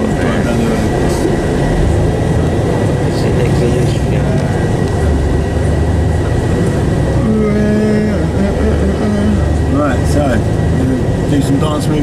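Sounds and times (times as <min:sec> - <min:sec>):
coach engine and tyres rumbling: 0:00.0 - 0:12.0.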